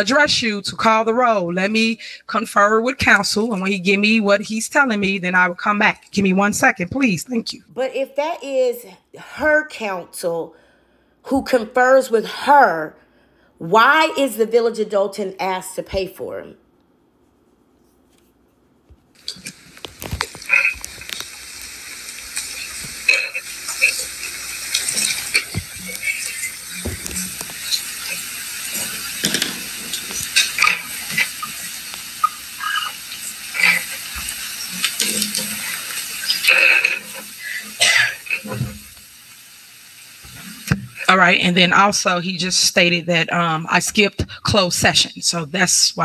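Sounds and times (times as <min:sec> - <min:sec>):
steady hiss: 0:19.2 - 0:41.2.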